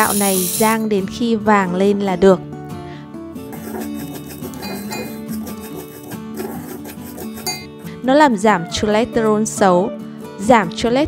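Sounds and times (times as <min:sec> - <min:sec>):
soft plucked guitar music: 0:07.7 - 0:11.0.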